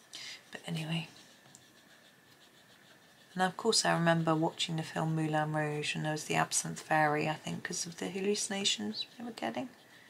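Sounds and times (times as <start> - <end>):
coloured pencil scratching paper: 0.0 - 10.0.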